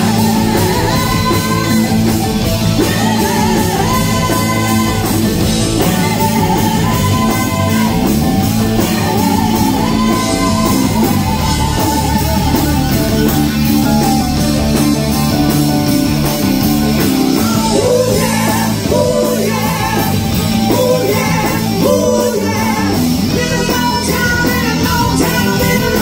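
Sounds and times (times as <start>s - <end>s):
women singing: 0.0s - 13.3s, 17.3s - 26.0s
distorted electric guitar: 0.0s - 26.0s
drum kit beat: 0.0s - 26.0s.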